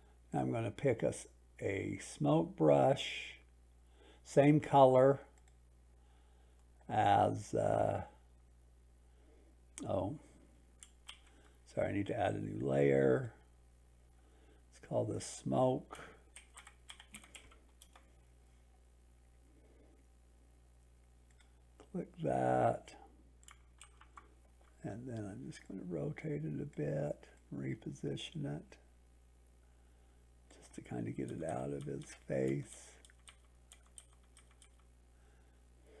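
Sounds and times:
faint low hum: 0.0s - 36.0s
keyboard keys tapping: 16.3s - 18.0s, 31.2s - 34.8s.

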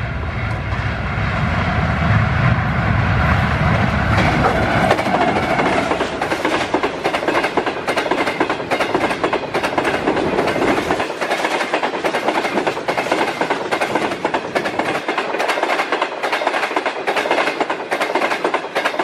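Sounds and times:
train wheels rushing on rail: 0.0s - 19.0s
wheels clacking over rail joints: 4.1s - 19.0s.

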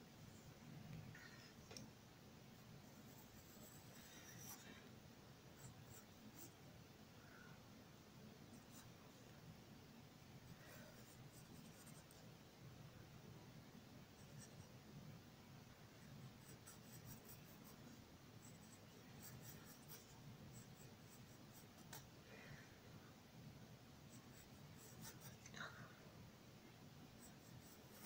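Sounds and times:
pencil scratching on paper: 2.8s - 4.8s, 5.6s - 6.6s, 10.5s - 12.2s, 14.2s - 14.7s, 16.3s - 22.1s, 24.1s - 25.5s, 27.2s - 28.0s.

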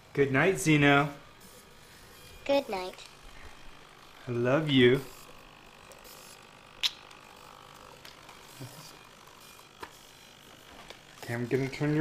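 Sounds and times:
servo motors whirring and ticking: 0.9s - 12.0s
sharp click: 6.8s - 7.1s.

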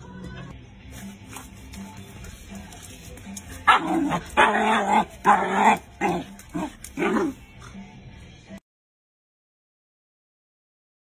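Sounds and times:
puppy yipping: 3.6s - 6.2s.

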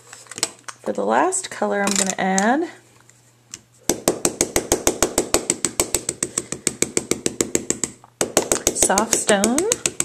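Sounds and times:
ink pad tapping on stamp: 3.9s - 10.0s.

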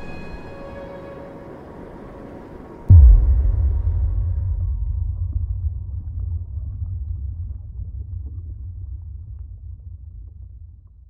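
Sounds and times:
deep steady rumble: 2.9s - 11.0s.

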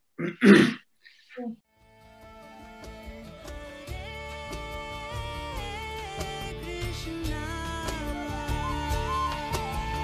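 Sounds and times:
person clearing throat: 0.2s - 0.9s.

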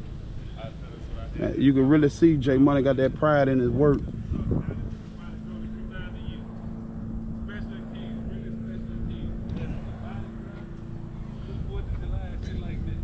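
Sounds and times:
vehicle engine idling: 0.0s - 13.0s
faint voices: 0.3s - 13.0s.

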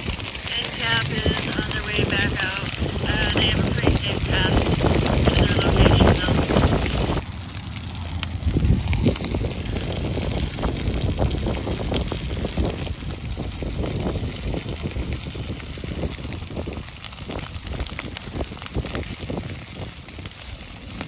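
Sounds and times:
flames rushing: 0.0s - 21.0s
grass crackling and popping: 0.0s - 21.0s.

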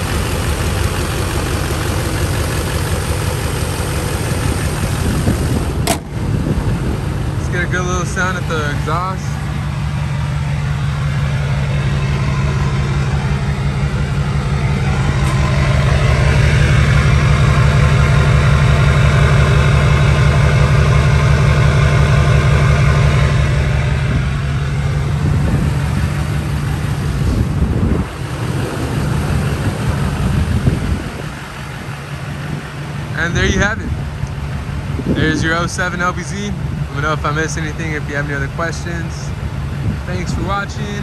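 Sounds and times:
diesel engine idling: 0.0s - 41.0s.

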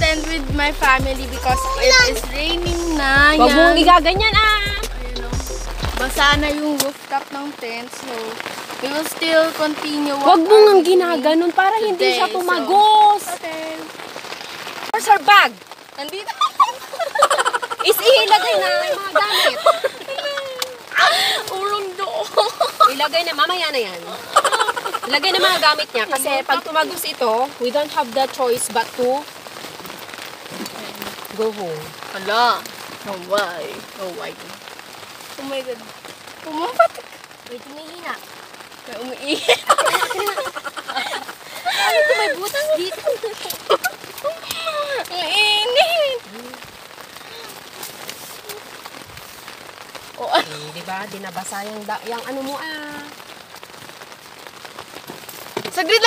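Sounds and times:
rain falling on a tent: 0.0s - 56.0s.

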